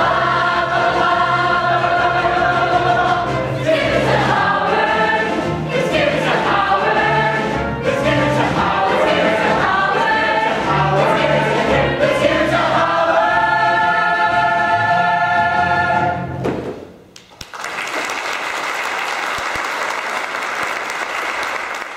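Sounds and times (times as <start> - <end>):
ensemble singing in chorus: 0.0 - 16.4
audience applause: 17.2 - 21.9.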